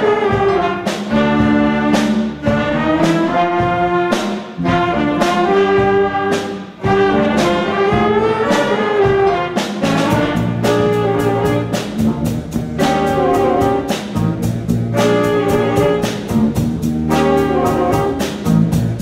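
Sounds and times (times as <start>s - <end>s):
jazz big band playing: 0.0s - 19.0s.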